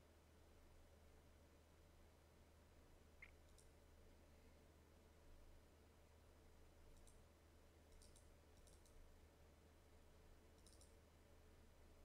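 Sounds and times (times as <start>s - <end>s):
low steady hum: 0.0s - 12.0s
computer mouse clicks: 7.0s - 7.2s, 7.9s - 9.0s, 10.6s - 11.0s.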